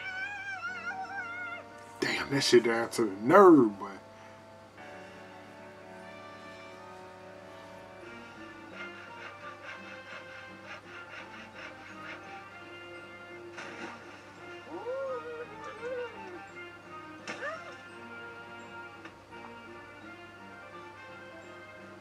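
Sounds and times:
light cartoon background music: 0.0 - 22.0.

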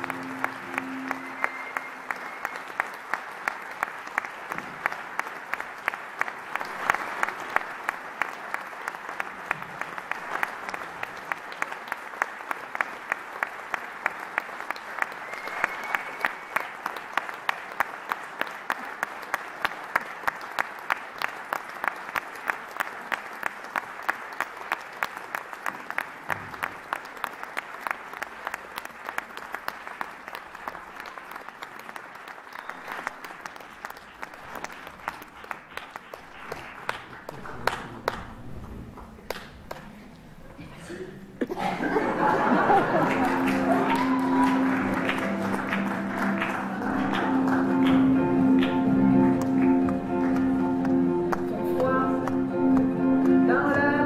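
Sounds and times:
rhythmic clapping: 0.0 - 40.2, 42.1 - 54.0
audience applauding: 0.0 - 40.4, 41.4 - 54.0.

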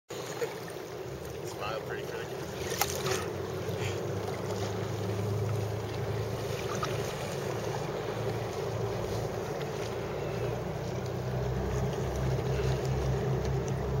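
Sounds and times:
water lapping: 0.1 - 14.0.

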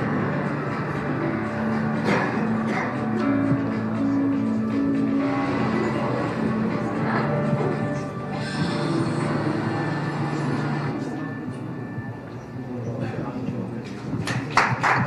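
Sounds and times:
instrumental music over loudspeakers: 0.0 - 15.0.

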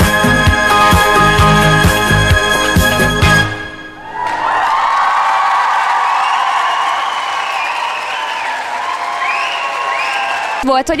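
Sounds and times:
large crowd cheering: 3.7 - 11.0
applause: 4.2 - 11.0.

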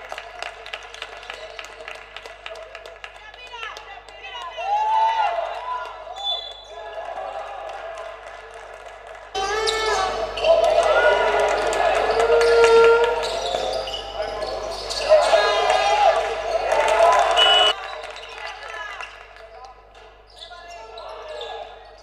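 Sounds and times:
players' voices: 9.4 - 22.0.

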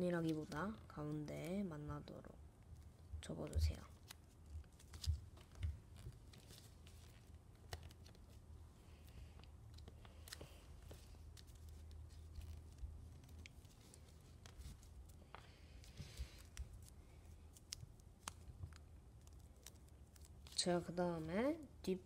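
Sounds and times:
low steady hum: 0.0 - 22.0
paper rustling and crinkling: 3.6 - 20.9.

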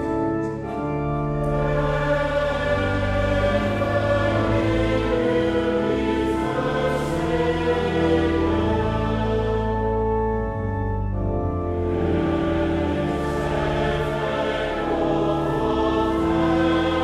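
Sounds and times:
congregation singing a psalm: 0.0 - 17.0
organ chords: 0.0 - 17.0.

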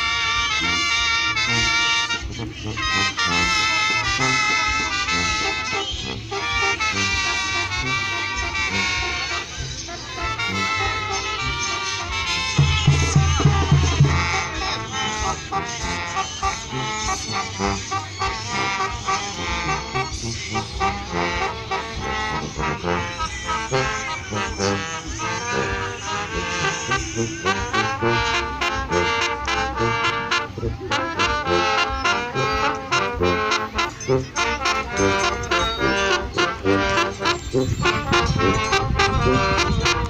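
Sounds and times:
brass band music: 0.0 - 40.0
sharp percussion strikes: 12.4 - 15.8.

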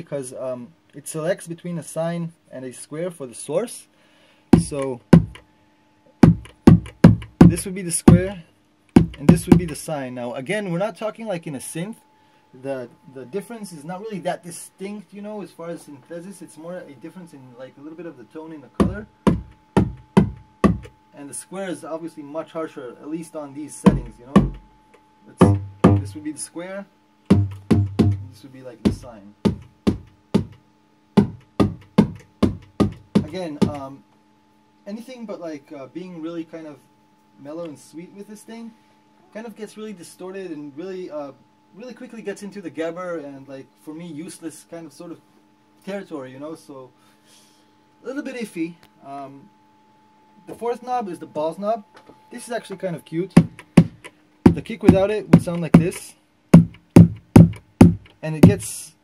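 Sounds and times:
synthesized kick drum hits: 4.6 - 5.4, 6.2 - 8.4, 9.0 - 9.8, 18.8 - 21.0, 23.9 - 24.7, 25.4 - 26.2, 27.3 - 30.6, 31.2 - 33.9, 53.4 - 56.0, 56.6 - 58.7.

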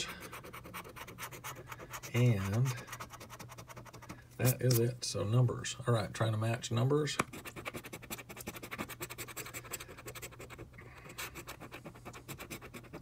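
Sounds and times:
scratch-off ticket being scratched: 0.0 - 4.8, 7.2 - 13.0.

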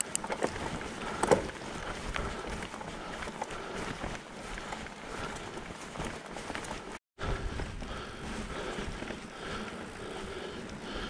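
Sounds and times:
bike rattles and clicks: 0.0 - 11.0
bike tyre rumble on grass: 0.0 - 11.0.

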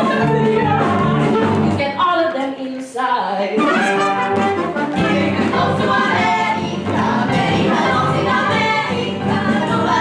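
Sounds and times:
brass-led stage musical music: 0.0 - 2.1, 3.4 - 10.0.

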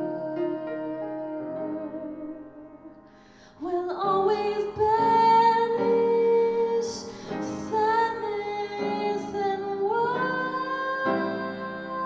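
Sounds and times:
woman singing jazz ballad: 0.0 - 2.9, 3.6 - 12.0
piano accompaniment: 0.0 - 12.0.

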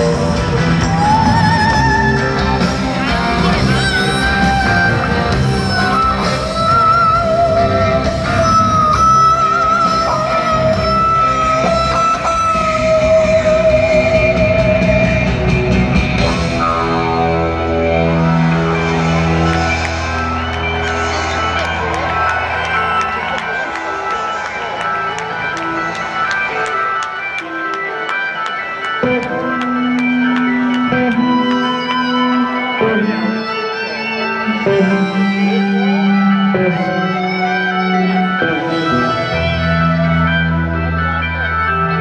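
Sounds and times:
live rock band in arena: 0.0 - 42.0
sustained guitar tones: 0.0 - 42.0.

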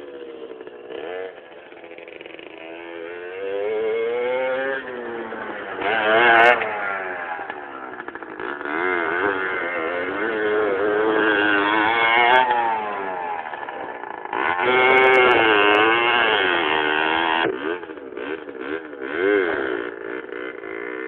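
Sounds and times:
dirt bike engine revving: 0.0 - 21.0.

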